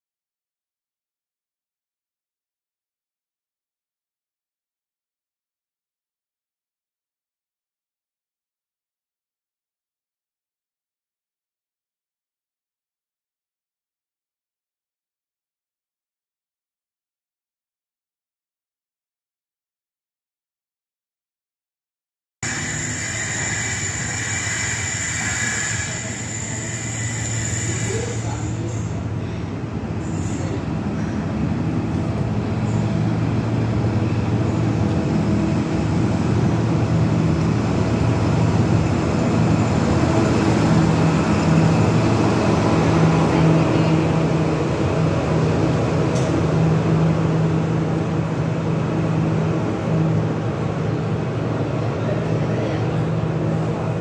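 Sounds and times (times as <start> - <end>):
diesel train engine drone: 22.4 - 54.0
hissy train running noise: 22.4 - 54.0
train coaches rolling past: 22.4 - 54.0.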